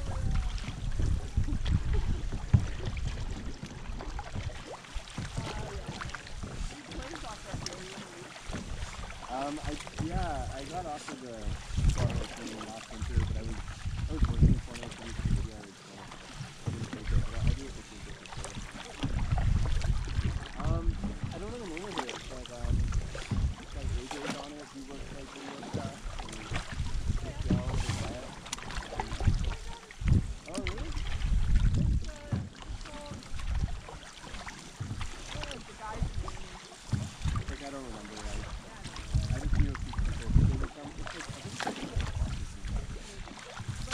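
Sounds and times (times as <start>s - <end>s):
paddle strokes: 0.0s - 43.9s
water sloshing: 0.0s - 43.9s
wind rumbling on microphone: 0.0s - 43.9s
people talking indistinctly: 5.2s - 19.1s, 20.4s - 33.4s, 35.2s - 43.9s.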